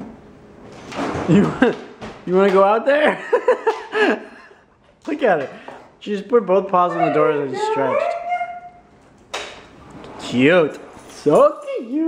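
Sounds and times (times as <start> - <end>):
dog whining: 6.8 - 8.9.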